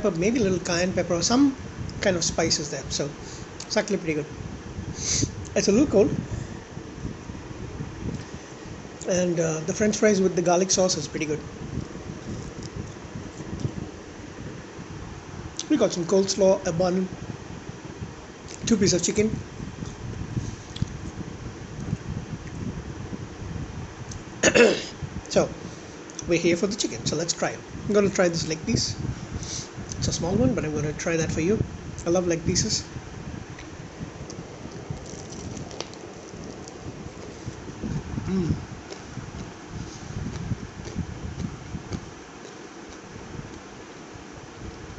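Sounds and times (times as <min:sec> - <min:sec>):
fan noise: 0:00.0 - 0:44.9
steady background hiss: 0:00.0 - 0:44.9
chewing crispy fried chicken: 0:33.6 - 0:44.9.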